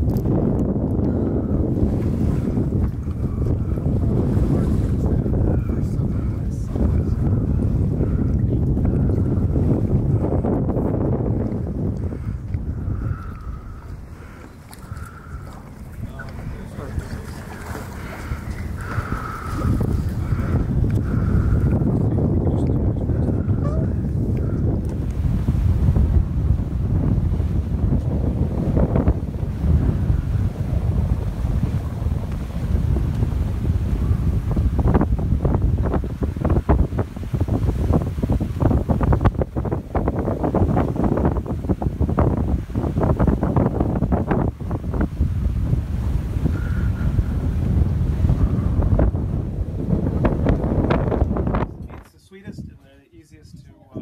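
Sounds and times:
water rushing along hull: 0.0 - 52.1
wind buffeting microphone: 0.0 - 54.0.

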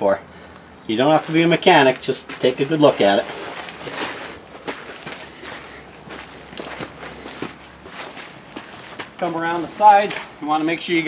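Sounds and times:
footsteps on wet asphalt: 0.9 - 11.0.

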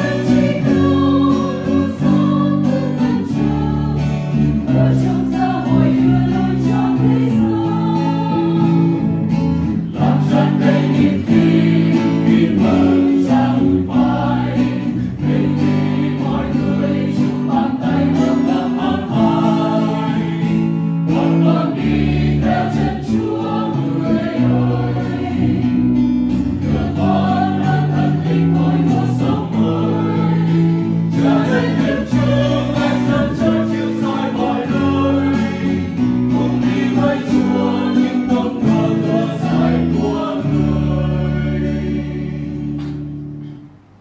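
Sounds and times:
mixed choir singing a hymn: 0.0 - 43.3
acoustic guitar: 0.0 - 44.0
electric bass guitar: 0.0 - 44.0.

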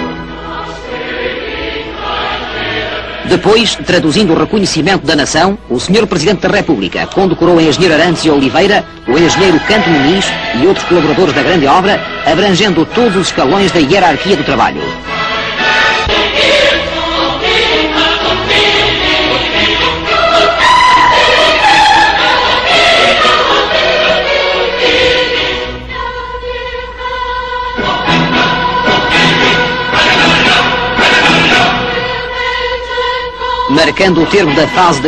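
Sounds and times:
choir singing sustained chords: 0.0 - 35.0.

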